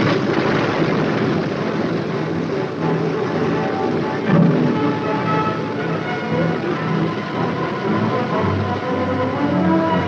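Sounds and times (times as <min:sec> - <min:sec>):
propeller spinning: 0:00.0 - 0:09.5.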